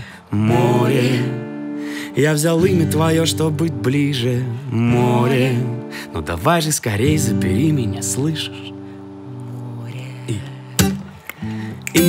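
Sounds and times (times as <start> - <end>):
acoustic guitar chords: 0.0 - 12.0
person singing: 0.0 - 12.0.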